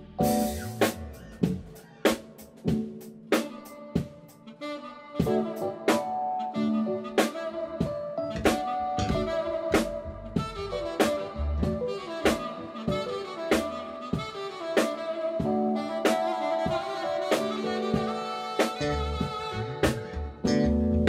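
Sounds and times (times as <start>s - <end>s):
electric bass: 0.0s - 1.8s, 8.3s - 12.5s, 18.8s - 21.0s
drum kit beat: 0.0s - 4.5s, 5.2s - 6.5s, 7.1s - 21.0s
keyboard: 0.0s - 21.0s
saxophone melody: 0.0s - 21.0s.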